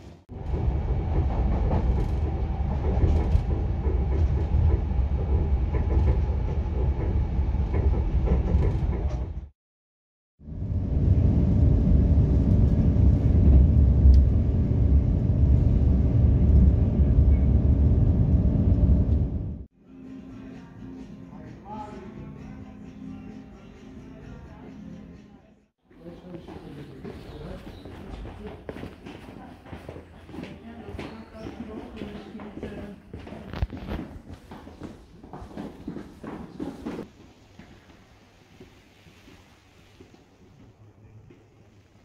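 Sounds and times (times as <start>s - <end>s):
train rumbling in motion: 0.3s - 9.5s, 10.5s - 19.7s.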